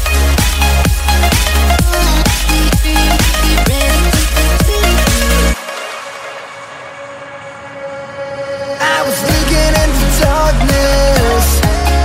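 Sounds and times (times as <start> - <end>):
electronic dance-pop music: 0.0 - 12.0.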